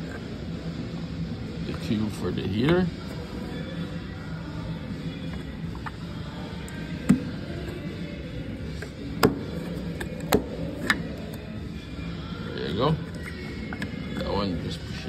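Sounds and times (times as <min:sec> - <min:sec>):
steady background hum: 0:00.0 - 0:15.0.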